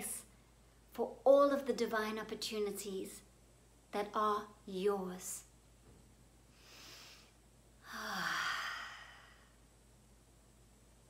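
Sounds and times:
woman breathing in softly: 6.5 - 9.6
woman sighing: 7.8 - 9.4.

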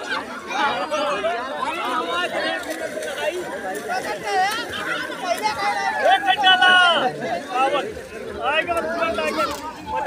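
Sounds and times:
babble of overlapping voices: 0.0 - 10.0.

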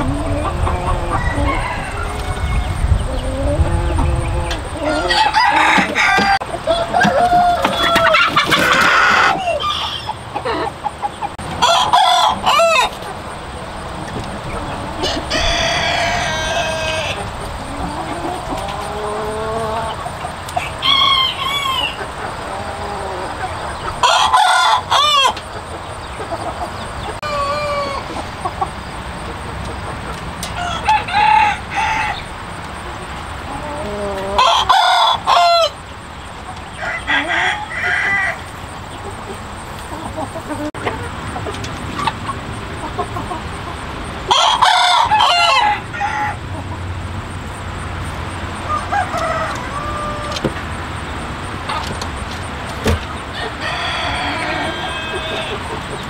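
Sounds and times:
chicken calls and clucks: 0.0 - 56.0
roosters crowing: 0.0 - 56.0.

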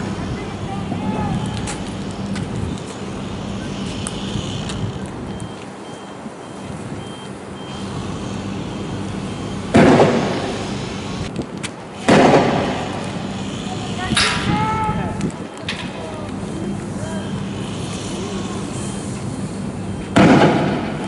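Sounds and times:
loud bangs: 9.7 - 10.7, 12.0 - 13.4, 20.1 - 21.0.

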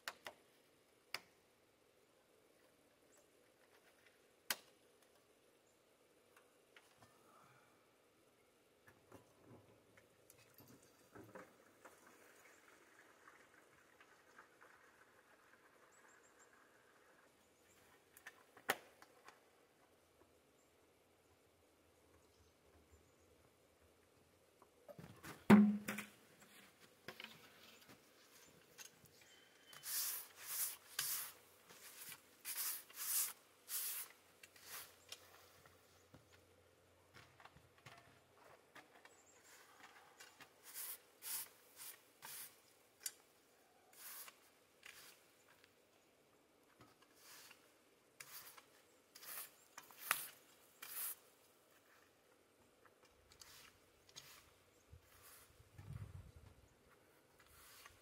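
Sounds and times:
snow brushed off log: 29.8 - 35.0, 48.2 - 51.2, 57.5 - 58.0.

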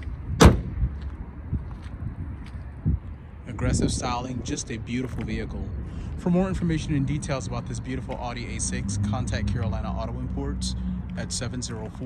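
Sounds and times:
car hood slamming shut: 0.4 - 0.7.

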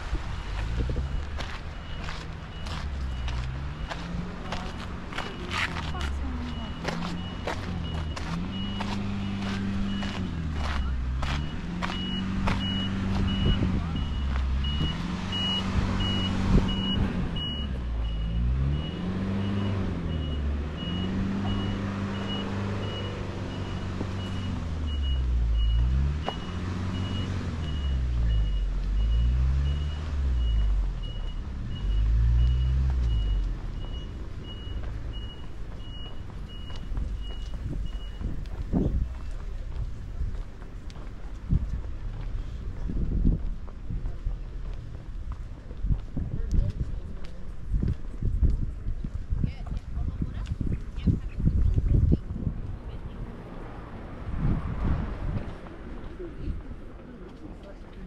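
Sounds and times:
vehicle reversing alarm beeps: 0.1 - 42.6
footsteps on path: 0.3 - 15.2, 32.0 - 54.1.

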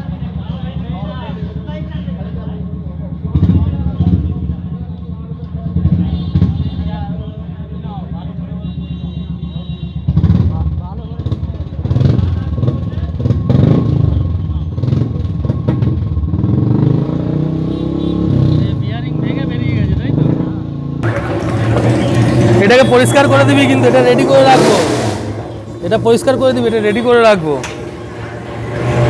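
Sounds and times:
motorcycle engine running: 0.0 - 24.7.

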